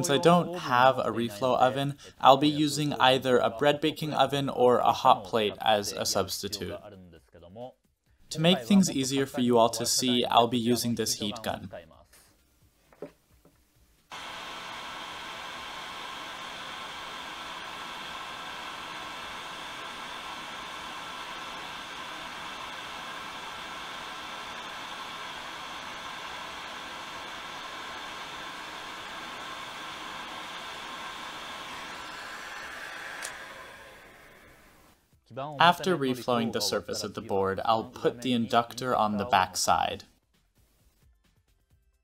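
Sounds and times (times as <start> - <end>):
faint motor whine: 14.1 - 35.0
heat gun blowing air: 14.1 - 35.0.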